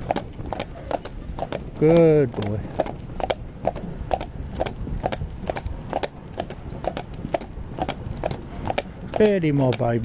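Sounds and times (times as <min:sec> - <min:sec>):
low rumble: 0:00.0 - 0:09.2
horse hooves clip-clopping on tarmac: 0:00.0 - 0:10.0.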